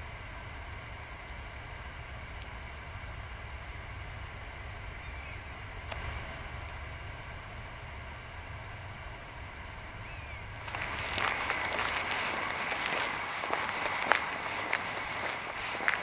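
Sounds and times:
low rumble: 0.0 - 16.0
footsteps on a path: 10.6 - 16.0.

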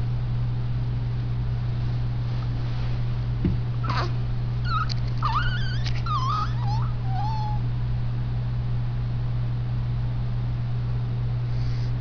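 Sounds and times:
steady low hum: 0.0 - 12.0
high squeaky whimpering calls: 3.8 - 7.6.

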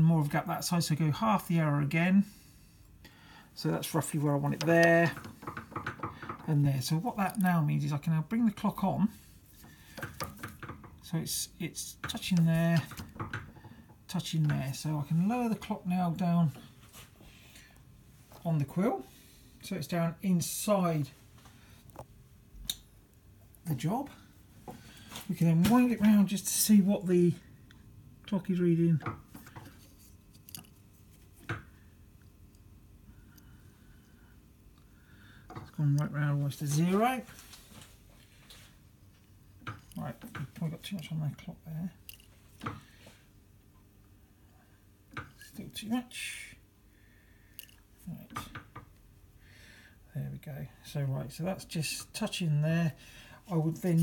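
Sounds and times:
faint light clicks and knocks: 4.6 - 6.5.

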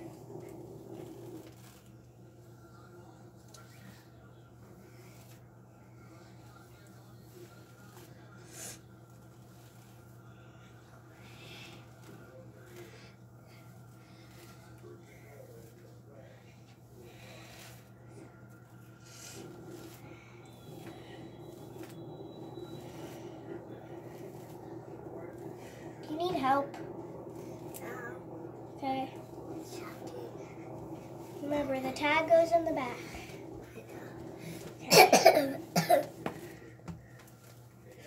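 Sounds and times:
hairbrush swishing through hair: 0.0 - 2.2, 4.7 - 38.0
steady low hum: 0.0 - 38.0.

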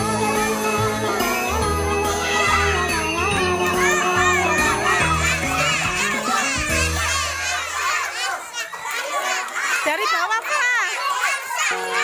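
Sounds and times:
young children chattering: 0.6 - 12.0.

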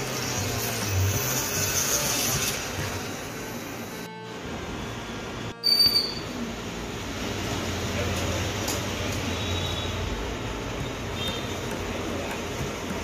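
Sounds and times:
brief loud high tone: 5.6 - 6.4.

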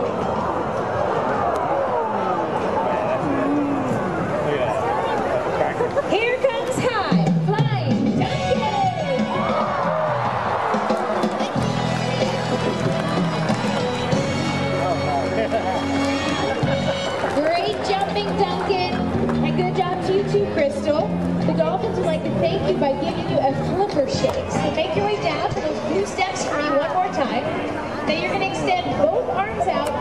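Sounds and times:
stadium crowd talking: 0.0 - 30.0.

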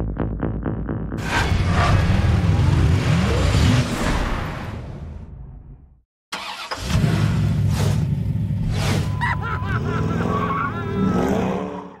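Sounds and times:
engine revving: 0.6 - 4.8, 6.4 - 9.1, 9.8 - 12.0.

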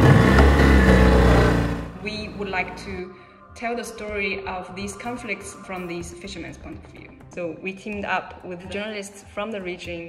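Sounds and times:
outboard motor running hard: 0.0 - 2.0.

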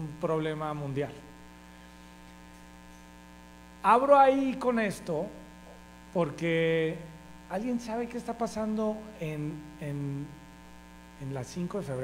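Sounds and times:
man speaking: 0.0 - 1.3, 3.8 - 5.4, 6.1 - 10.4, 11.2 - 12.0
electrical hum: 0.0 - 12.0.

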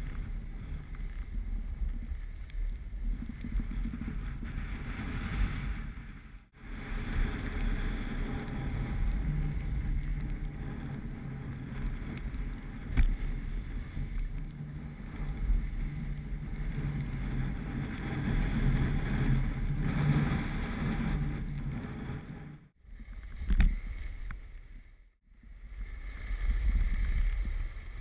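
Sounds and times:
wind buffeting microphone: 0.0 - 24.6, 25.4 - 28.0
skis sliding on snow: 0.0 - 24.9, 25.6 - 28.0.

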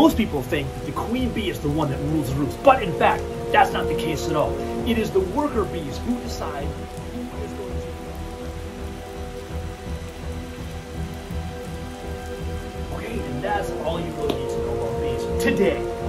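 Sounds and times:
steady rain: 0.0 - 16.0
sustained low music tones: 0.0 - 16.0.

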